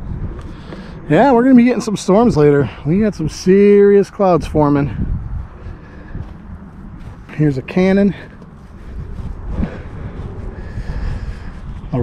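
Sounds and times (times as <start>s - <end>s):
jet plane rumbling overhead: 0.0s - 12.0s.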